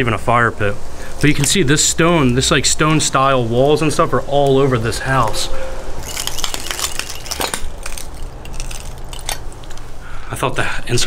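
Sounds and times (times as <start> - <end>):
footsteps crunching over debris: 4.3 - 10.0.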